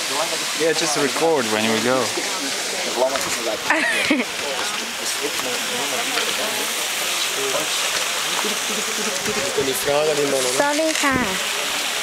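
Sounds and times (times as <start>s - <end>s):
faint voices talking: 0.0s - 12.0s
steady hiss: 0.0s - 12.0s.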